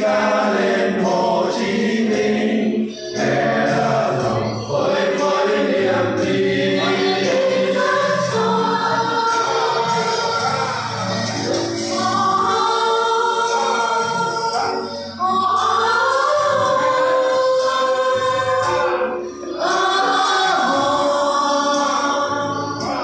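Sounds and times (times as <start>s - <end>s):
men and women singing together: 0.0s - 23.0s.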